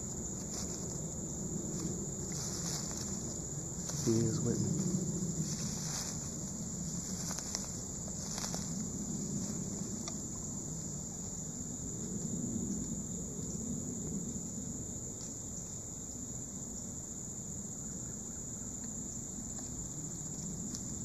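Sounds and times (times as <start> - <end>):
insects buzzing chorus: 0.0 - 21.0.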